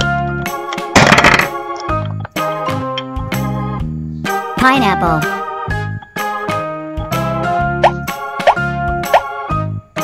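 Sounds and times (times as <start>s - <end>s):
upbeat children's music: 0.0s - 10.0s.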